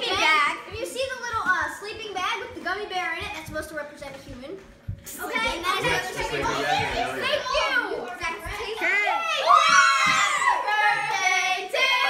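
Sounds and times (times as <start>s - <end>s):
girls talking and calling out: 0.0s - 12.0s.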